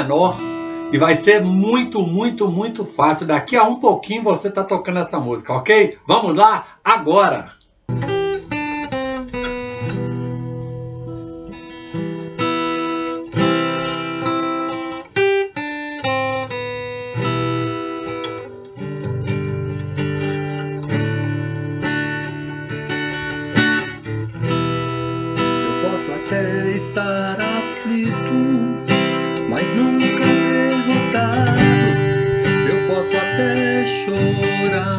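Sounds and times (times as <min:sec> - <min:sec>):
acoustic guitar strumming: 0:00.0 - 0:04.3, 0:07.8 - 0:34.9.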